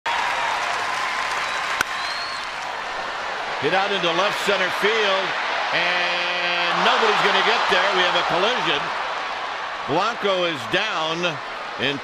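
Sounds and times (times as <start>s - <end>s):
crowd clapping and cheering: 0.0s - 12.0s
bat hitting ball: 1.8s - 2.0s.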